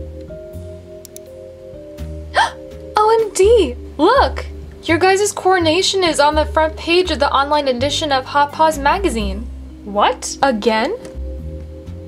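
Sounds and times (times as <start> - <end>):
soft background music: 0.0 - 12.0
girl making wordless sounds: 2.4 - 4.4.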